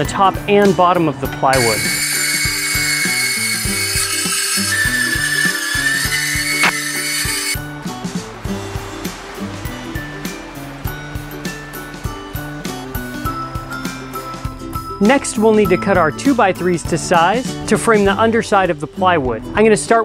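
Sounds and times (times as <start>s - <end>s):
upbeat background music: 0.0s - 20.0s
circular saw cutting wood: 1.5s - 7.6s.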